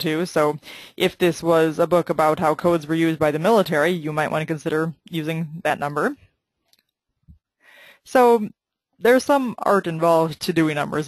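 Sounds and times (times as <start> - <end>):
woman speaking: 0.0 - 6.2, 8.0 - 11.0
woman breathing in: 7.6 - 8.0.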